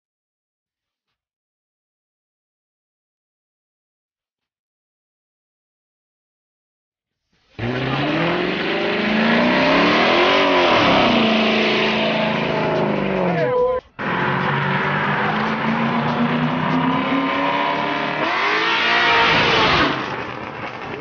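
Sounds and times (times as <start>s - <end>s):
car engine revving: 7.6s - 21.0s.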